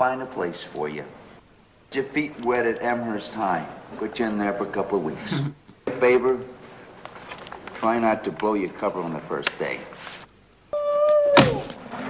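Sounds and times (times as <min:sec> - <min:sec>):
sharp thunk with falling pitch: 0:11.3 - 0:11.8.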